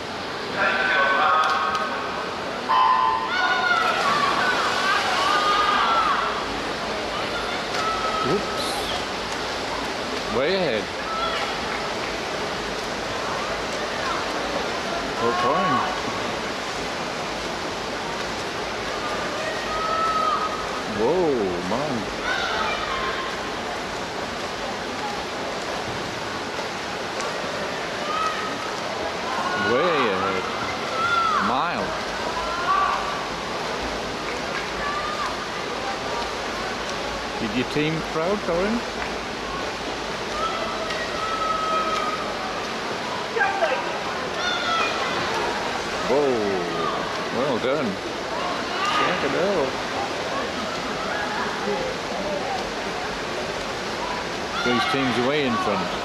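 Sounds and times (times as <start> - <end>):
water churned by swimmers: 0.0 - 56.0
distant spectators' voices: 0.1 - 56.0.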